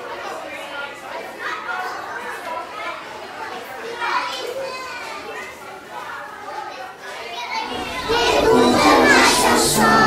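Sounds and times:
children talking and calling out: 0:00.0 - 0:10.0.

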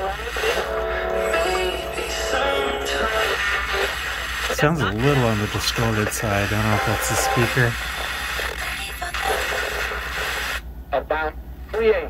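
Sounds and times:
radio voice through small speaker: 0:00.0 - 0:10.4, 0:11.0 - 0:12.0
radio static hiss: 0:00.0 - 0:12.0.

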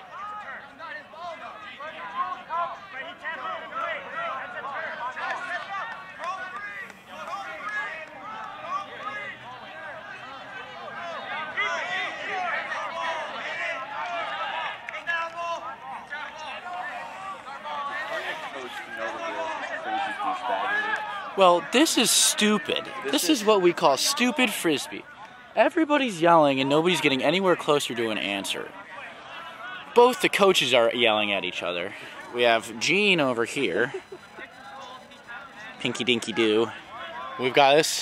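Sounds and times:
people shouting and arguing: 0:00.0 - 0:38.0.

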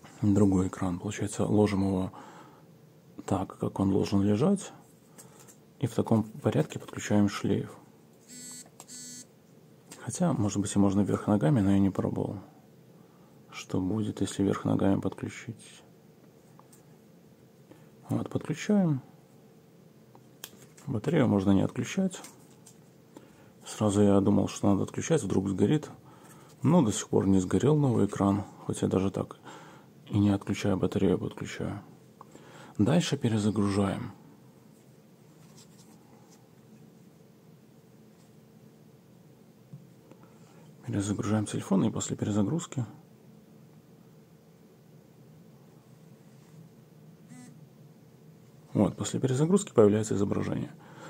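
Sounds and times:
short electronic beeps: 0:08.3 - 0:09.3.

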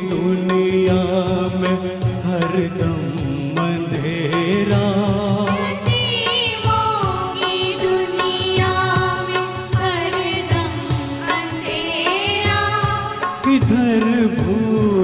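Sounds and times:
women singing together: 0:05.6 - 0:13.4.

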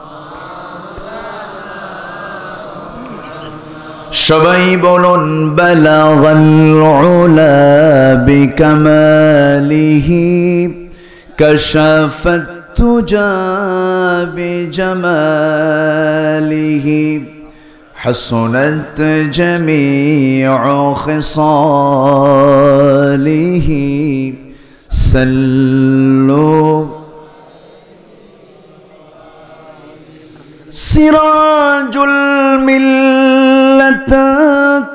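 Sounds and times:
man chanting unaccompanied: 0:00.0 - 0:34.9.

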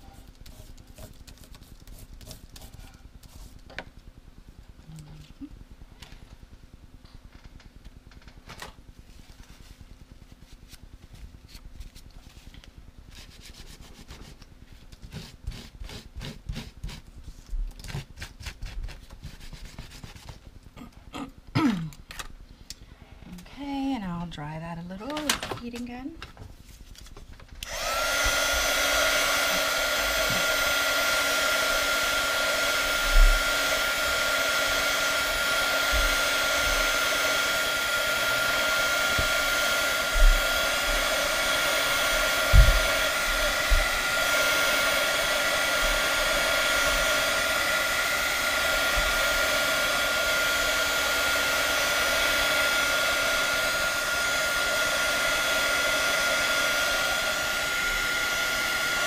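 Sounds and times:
heat gun blowing with a whine: 0:27.0 - 0:59.0.

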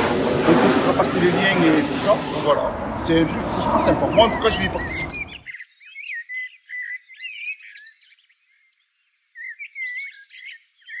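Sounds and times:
small birds chirping: 0:03.6 - 0:11.0.

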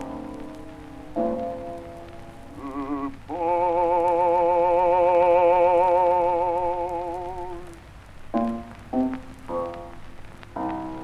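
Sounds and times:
record surface hiss and crackle: 0:00.0 - 0:11.0.

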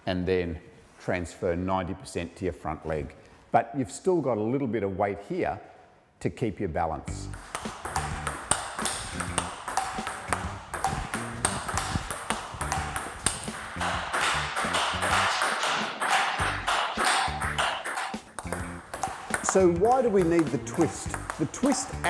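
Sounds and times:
background music with beat: 0:07.1 - 0:22.0
table tennis ball clicks: 0:07.4 - 0:21.9.

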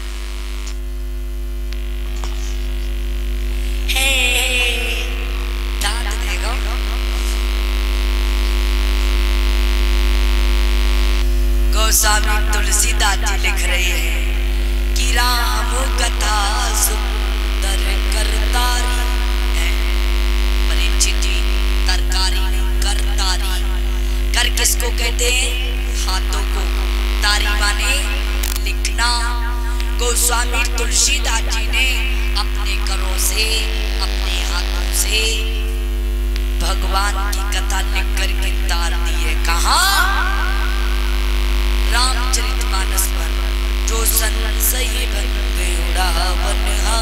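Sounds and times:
electrical mains hum: 0:00.0 - 0:47.0
voice fragments: 0:02.0 - 0:07.5, 0:20.7 - 0:35.8.

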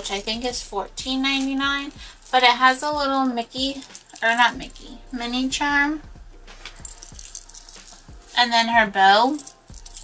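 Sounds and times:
metal keychain jangling: 0:00.0 - 0:05.5, 0:06.6 - 0:10.0.

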